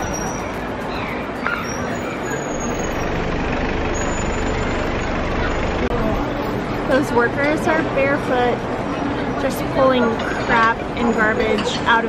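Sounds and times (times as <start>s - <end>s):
vehicle engine running close by: 0.0s - 9.8s
street traffic noise: 0.0s - 12.0s.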